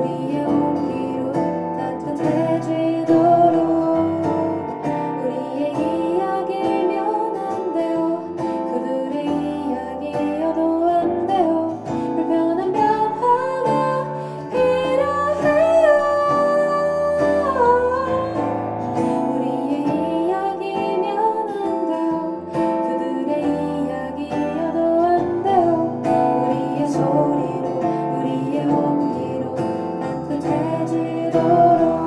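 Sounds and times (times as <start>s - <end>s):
acoustic guitar strummed: 0.0s - 32.0s
person singing: 0.0s - 32.0s.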